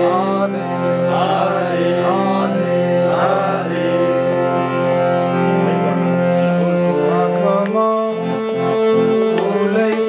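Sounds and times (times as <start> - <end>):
man singing: 0.0 - 4.6, 7.0 - 10.0
harmonium chords: 0.0 - 10.0.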